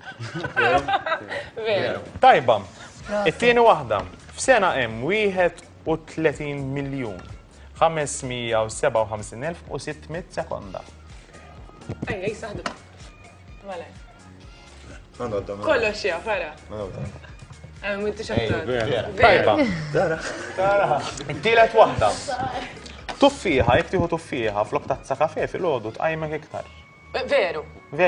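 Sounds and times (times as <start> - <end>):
woman laughing: 0.0 - 1.6, 22.2 - 23.0
quiet background music: 0.0 - 28.0.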